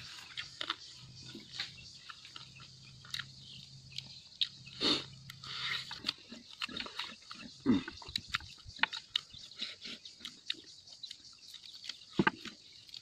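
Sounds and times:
loud chewing and lip-smacking: 0.0s - 13.0s
low throat sound: 4.7s - 8.2s.

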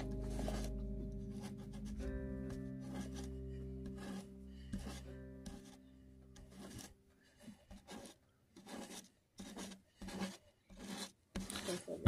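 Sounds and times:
paintbrush bristles scratching: 0.0s - 12.0s.

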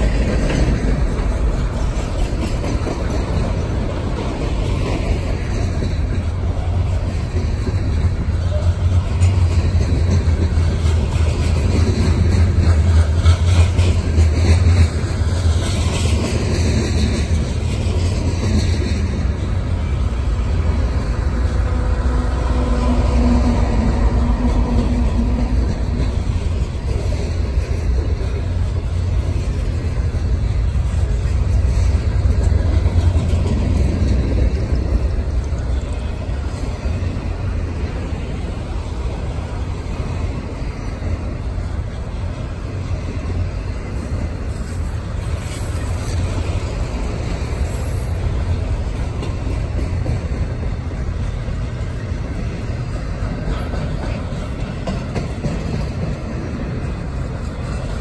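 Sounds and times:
freight train rolling on rails: 0.0s - 58.0s.

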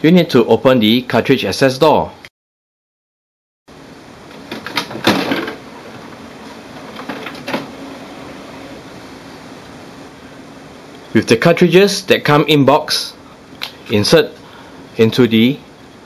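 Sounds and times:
faint steady hum: 3.7s - 16.0s
printer door pulled open: 4.4s - 5.6s, 6.9s - 7.8s.

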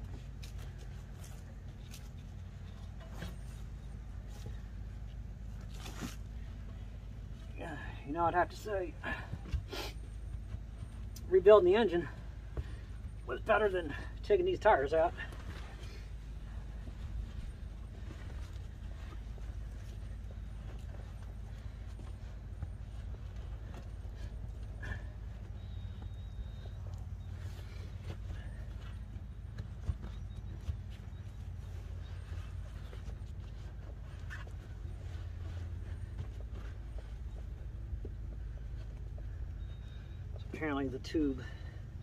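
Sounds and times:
steady low rumble: 0.0s - 42.0s.

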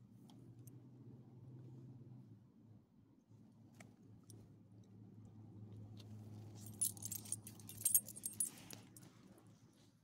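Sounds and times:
dog collar tags jingling: 6.7s - 8.9s.

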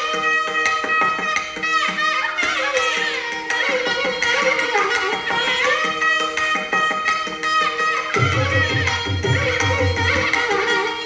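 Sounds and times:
violin: 0.0s - 11.0s.

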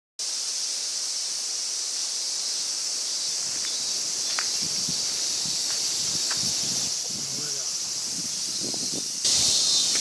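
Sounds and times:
insects droning: 0.2s - 10.0s.

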